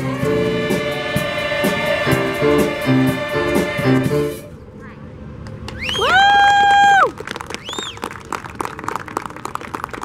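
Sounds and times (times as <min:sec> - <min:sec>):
high whoop: 0:05.7 - 0:08.0
person cheering woo: 0:05.8 - 0:08.0.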